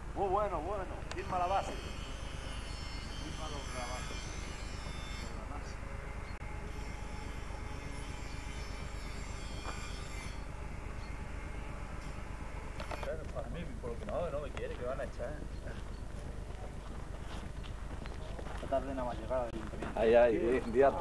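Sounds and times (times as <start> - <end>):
helicopter turbine engine running: 0.0 - 21.0.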